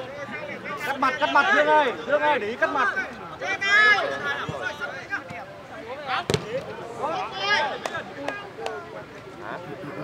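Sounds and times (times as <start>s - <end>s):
football kick thud: 6.3s - 6.7s.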